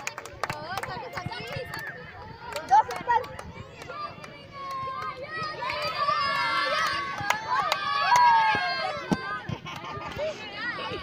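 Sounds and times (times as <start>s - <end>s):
girls chattering and calling out: 0.6s - 11.0s.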